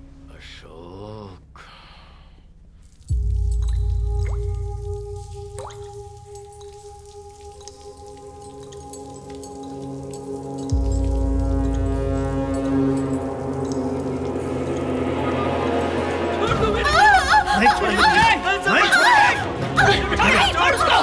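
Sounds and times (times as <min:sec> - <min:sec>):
rising drip-like plinks: 0:02.8 - 0:18.4
deep low boom: 0:03.1 - 0:06.4.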